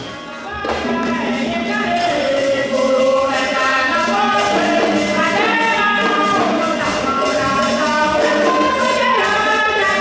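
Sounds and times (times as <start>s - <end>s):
group of voices singing: 0.0s - 10.0s
hand percussion: 0.0s - 10.0s.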